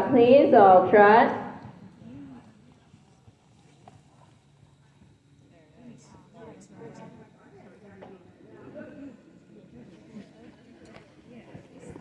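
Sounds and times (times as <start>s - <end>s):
low steady hum: 0.0s - 12.0s
horse hooves trotting on sand: 1.6s - 5.3s.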